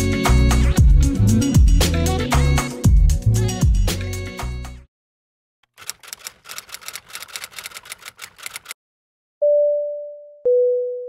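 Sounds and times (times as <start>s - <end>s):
keyboard key clicks: 5.7s - 8.8s.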